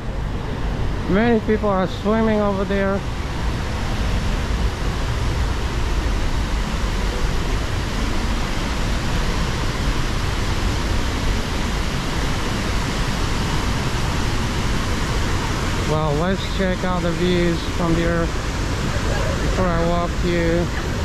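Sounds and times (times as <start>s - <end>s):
river rushing: 0.0s - 21.0s
waterfall roaring: 0.0s - 21.0s.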